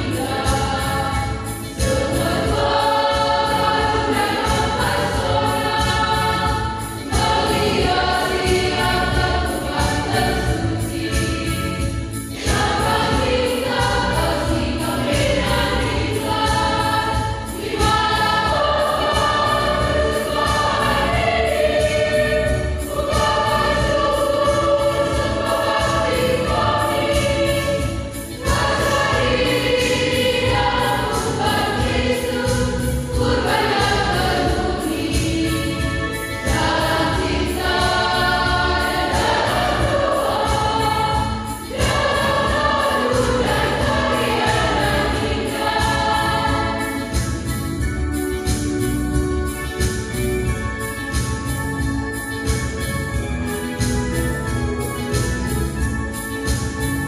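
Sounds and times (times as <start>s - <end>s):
choir singing a hymn: 0.0s - 47.6s.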